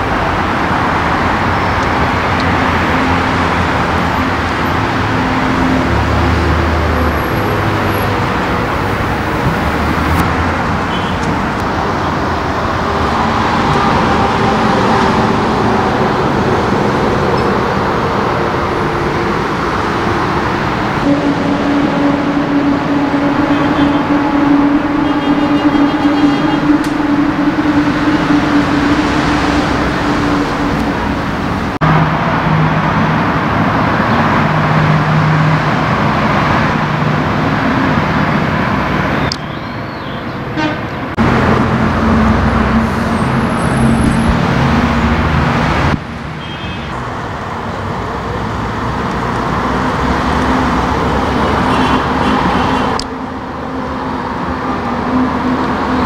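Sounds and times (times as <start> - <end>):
cars driving past: 0.0 - 56.0.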